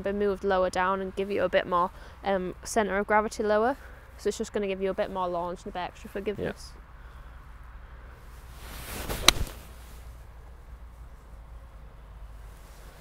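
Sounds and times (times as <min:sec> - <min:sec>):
faint low background noise: 0:00.0 - 0:13.0
golf club swish: 0:08.3 - 0:10.2.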